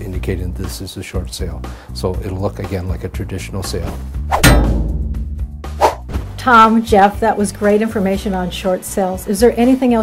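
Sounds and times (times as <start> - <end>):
background music: 0.0 - 10.0
metallic clang: 4.4 - 5.2.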